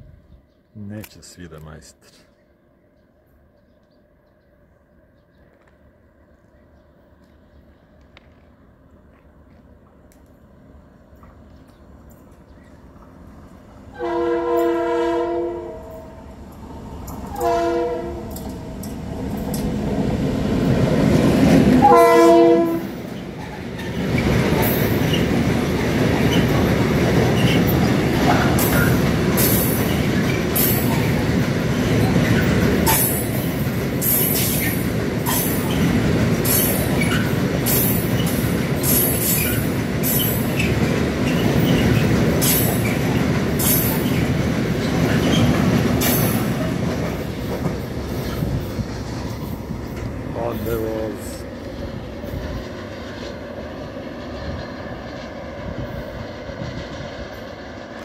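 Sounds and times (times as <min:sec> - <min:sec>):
locomotive horn: 0:13.9 - 0:16.2, 0:17.3 - 0:18.4, 0:21.8 - 0:22.9
train wheels clicking over rail joints: 0:23.0 - 0:50.8.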